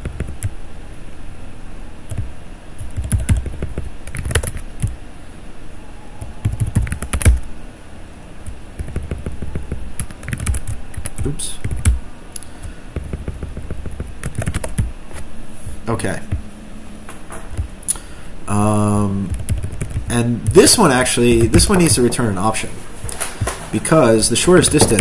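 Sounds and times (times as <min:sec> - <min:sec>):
typing on computer keyboard: 0:00.0 - 0:00.5, 0:02.1 - 0:05.0, 0:06.4 - 0:07.4, 0:08.8 - 0:12.0, 0:12.6 - 0:14.9, 0:19.3 - 0:20.1.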